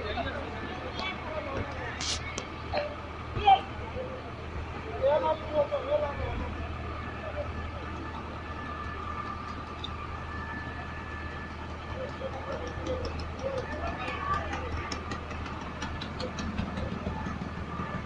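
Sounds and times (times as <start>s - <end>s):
people talking: 0.0s - 9.3s, 11.8s - 18.0s
engine running with low hum: 0.0s - 18.0s.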